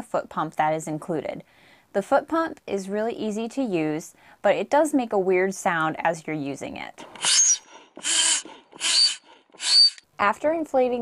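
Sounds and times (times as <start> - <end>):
foot pump hissing and whistling: 7.2 - 10.0.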